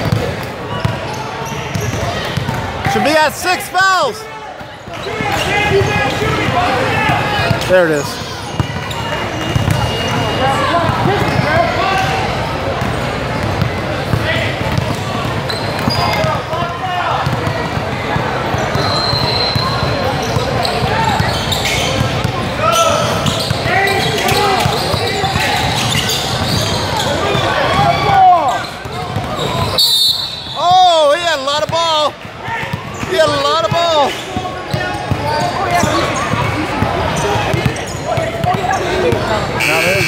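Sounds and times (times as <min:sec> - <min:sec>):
shoe squeaks: 0:00.0 - 0:02.4, 0:07.8 - 0:12.1, 0:14.8 - 0:16.5, 0:18.5 - 0:30.8, 0:32.9 - 0:40.0
crowd chatter and shouts: 0:00.0 - 0:40.0
basketball bouncing on hardwood: 0:17.2 - 0:17.8.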